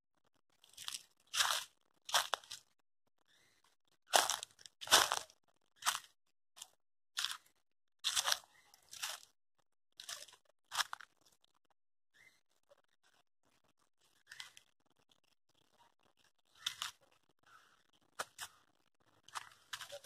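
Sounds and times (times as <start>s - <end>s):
footsteps crunching through dry leaves: 0.8s - 2.7s, 4.2s - 5.2s, 8.0s - 9.3s.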